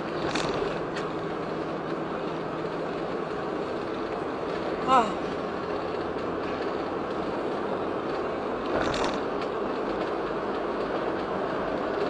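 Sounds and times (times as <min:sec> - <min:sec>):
car road and tyre noise: 0:00.0 - 0:12.0.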